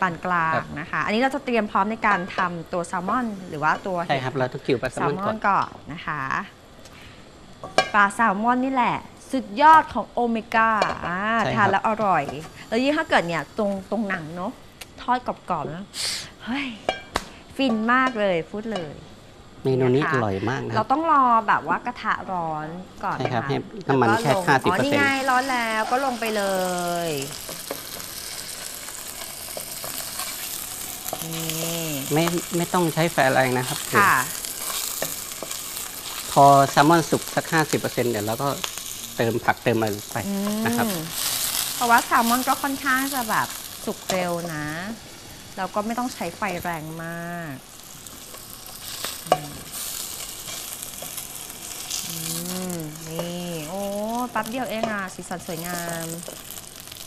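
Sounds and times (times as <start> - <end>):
fish sizzling in a frying pan: 0.0 - 57.0.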